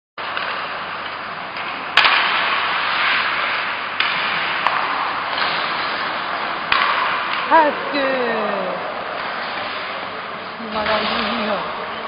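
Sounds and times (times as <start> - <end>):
stick and puck knocks: 0.2 - 7.6.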